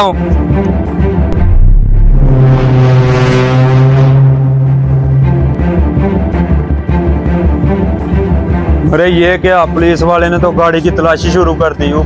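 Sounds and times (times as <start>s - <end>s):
pulsing low drum beat: 1.2s - 8.8s
low brass-like note: 1.3s - 6.8s.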